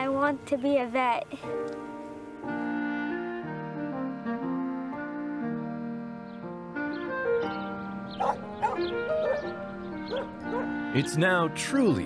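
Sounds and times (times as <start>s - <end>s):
background music: 0.0s - 12.0s
dog barking: 8.2s - 10.8s.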